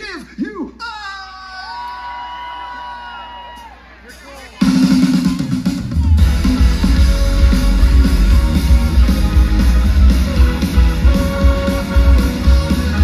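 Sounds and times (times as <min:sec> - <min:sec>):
drum kit: 0:04.1 - 0:13.0
live rock band: 0:04.1 - 0:13.0
electric guitars: 0:06.2 - 0:13.0.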